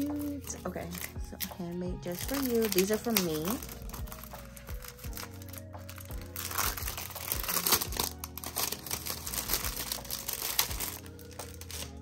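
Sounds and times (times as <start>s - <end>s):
background music: 0.0s - 12.0s
plastic packaging crinkling: 0.0s - 12.0s.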